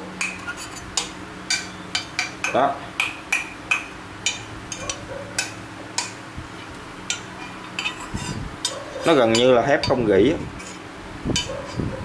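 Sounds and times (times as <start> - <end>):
metal rod tapping steel bowl: 0.2 - 6.2, 7.1 - 8.0, 8.6 - 10.8.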